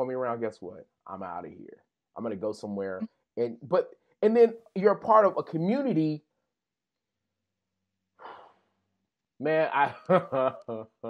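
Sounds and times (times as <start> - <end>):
breathy exhale: 8.2 - 8.7.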